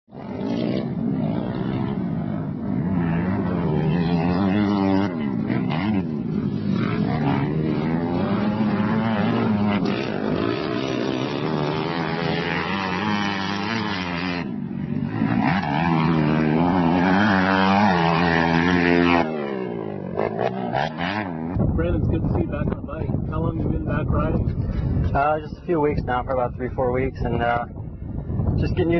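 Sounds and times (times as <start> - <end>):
motocross bike engine revving: 0.1 - 22.7.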